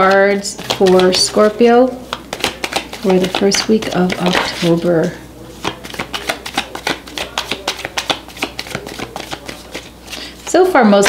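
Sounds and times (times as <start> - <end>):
cards being shuffled: 0.0 - 10.6.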